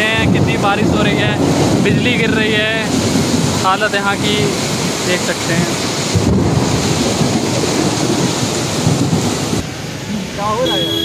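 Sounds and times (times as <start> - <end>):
wind rumbling on microphone: 0.0 - 9.7
heavy rain: 0.0 - 11.0.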